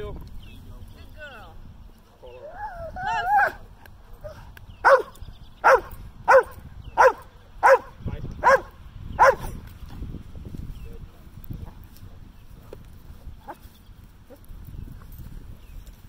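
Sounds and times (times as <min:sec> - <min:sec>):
dog barking: 0:03.0 - 0:03.6, 0:04.3 - 0:09.6.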